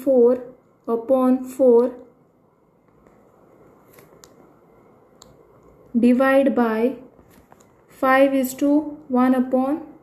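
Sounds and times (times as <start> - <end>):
low background hiss: 0.0 - 10.0.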